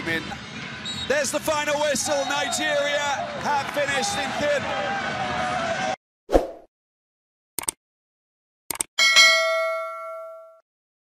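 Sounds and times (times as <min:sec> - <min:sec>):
quick clicks: 0:07.6 - 0:07.8, 0:08.7 - 0:08.9
notification bell ding: 0:09.0 - 0:10.6.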